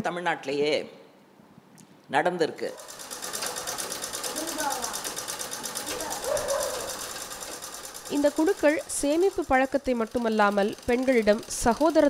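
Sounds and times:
sewing machine stitching: 0:02.8 - 0:12.0.

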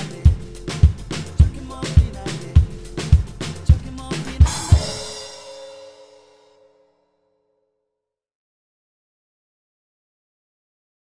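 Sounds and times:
backing track music: 0:00.0 - 0:06.1
drum kit groove: 0:00.0 - 0:06.3
cymbal crash ringing: 0:04.4 - 0:06.8.

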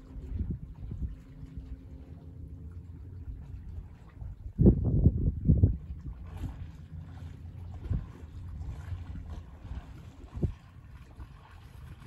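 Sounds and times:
wind buffeting microphone: 0:00.0 - 0:02.2, 0:02.8 - 0:12.0.

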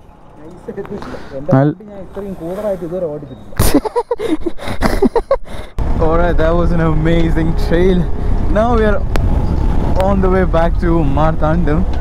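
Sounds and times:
people talking and laughing: 0:00.7 - 0:05.8
motorcycle riding with wind noise: 0:05.8 - 0:12.0.

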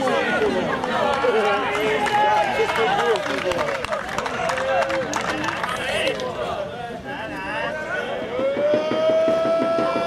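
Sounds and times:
people shouting: 0:07.4 - 0:10.0.

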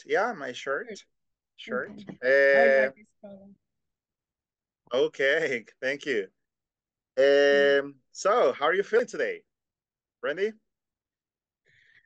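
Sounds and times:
person laughing: 0:02.2 - 0:02.9.

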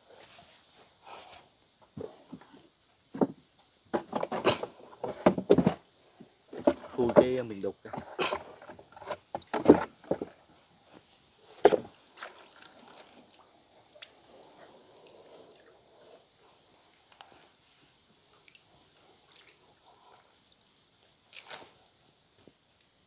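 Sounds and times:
knocks on wooden planks: 0:03.1 - 0:05.8, 0:06.5 - 0:10.4.

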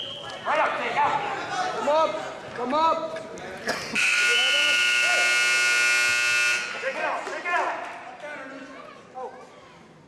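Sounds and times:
scoreboard buzzer: 0:04.0 - 0:06.9.

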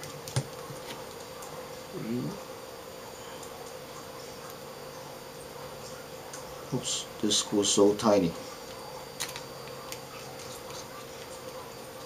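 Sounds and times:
steady background hum: 0:00.0 - 0:12.0.

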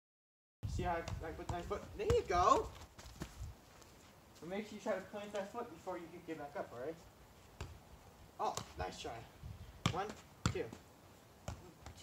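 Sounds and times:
man counting aloud: 0:00.6 - 0:02.7
dull thuds of ball touches: 0:00.8 - 0:03.5, 0:07.5 - 0:07.8, 0:08.4 - 0:09.0, 0:09.8 - 0:10.8, 0:11.4 - 0:12.0.

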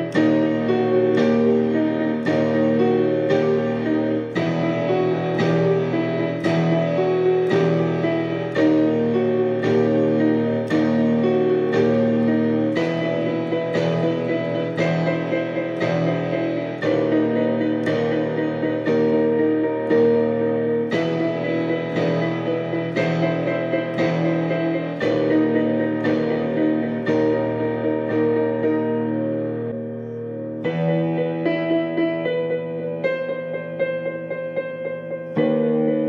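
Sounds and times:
dark piano chords: 0:00.0 - 0:36.0.

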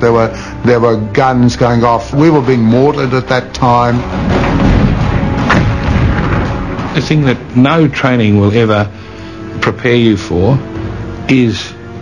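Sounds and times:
explosions low rumble: 0:04.0 - 0:07.6
sharp explosion crack: 0:04.1 - 0:07.3.

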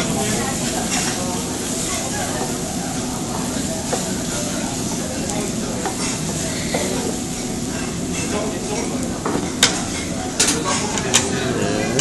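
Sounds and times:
rice and noodles sizzling in pan: 0:00.0 - 0:12.0.

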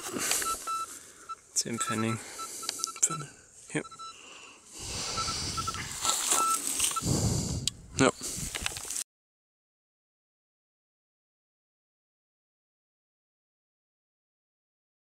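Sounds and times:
metal detector beeps: 0:00.0 - 0:04.2, 0:04.8 - 0:07.1
rustling handling noise: 0:05.6 - 0:07.0, 0:08.4 - 0:09.0.

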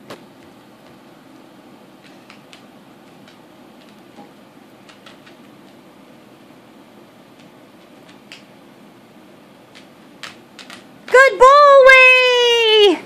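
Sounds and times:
low room hum: 0:00.0 - 0:13.0
dog claws clicking on tile: 0:02.0 - 0:04.0, 0:04.8 - 0:05.8, 0:07.3 - 0:08.5, 0:09.7 - 0:11.2.

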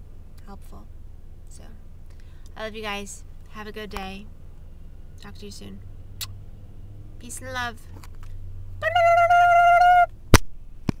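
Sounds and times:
person holding high vocal note: 0:08.8 - 0:10.1
person saying bye-bye: 0:08.8 - 0:10.1.

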